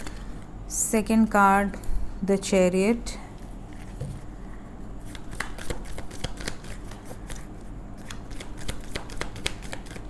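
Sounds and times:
cards being shuffled: 5.1s - 10.0s.

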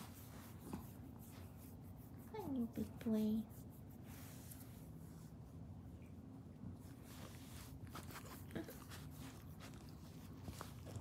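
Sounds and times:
hand stroking dog fur: 0.0s - 5.6s, 6.8s - 10.8s.

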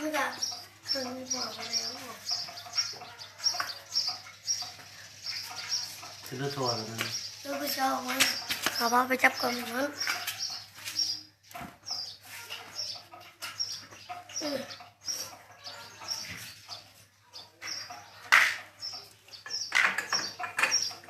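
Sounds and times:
small birds chirping: 0.0s - 21.0s.

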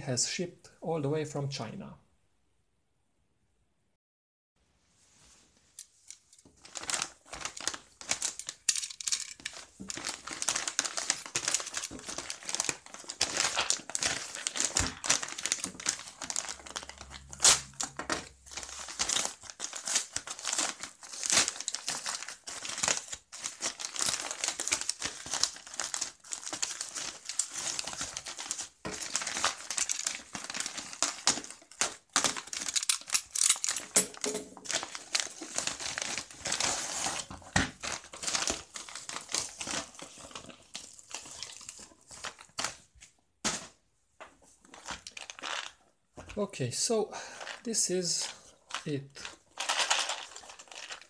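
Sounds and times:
padded envelope crinkling: 5.9s - 43.7s, 44.6s - 46.4s, 47.3s - 51.0s.

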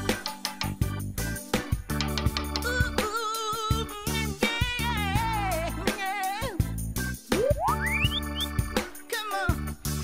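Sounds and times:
children's music: 0.0s - 10.0s
rising whistle-like tone: 7.4s - 8.6s
short upward chirp: 7.4s - 8.6s.

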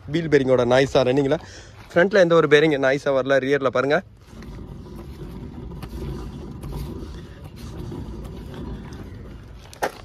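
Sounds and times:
tyre and wheel bearing rumbling: 0.0s - 10.0s.

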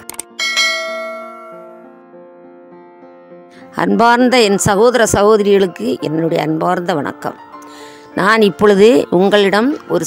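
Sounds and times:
bell chime ringing: 0.4s - 1.9s.

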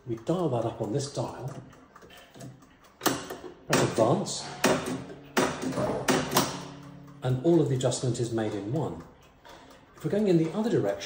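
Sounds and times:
clock mechanism clunks: 0.0s - 11.0s.

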